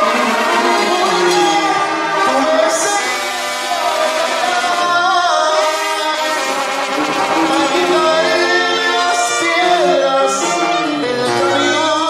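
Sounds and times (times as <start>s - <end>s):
brass band playing: 0.0s - 12.0s.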